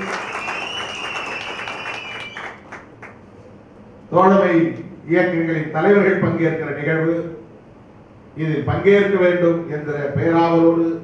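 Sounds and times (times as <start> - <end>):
audience applause: 0.0 - 3.2.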